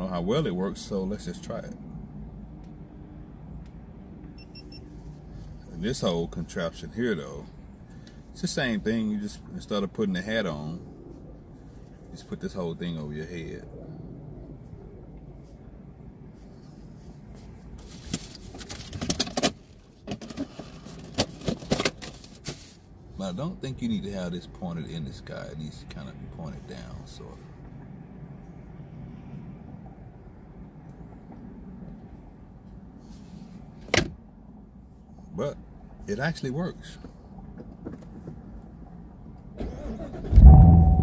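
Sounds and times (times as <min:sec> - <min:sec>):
low steady rumble: 0:40.0 - 0:41.0.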